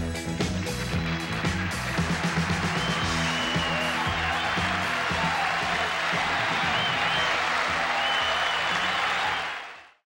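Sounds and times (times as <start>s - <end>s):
studio audience applauding: 0.0s - 10.0s.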